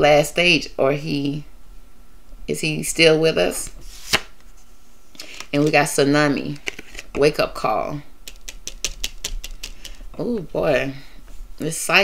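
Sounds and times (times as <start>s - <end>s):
cards clicking and tapping: 8.3s - 10.0s.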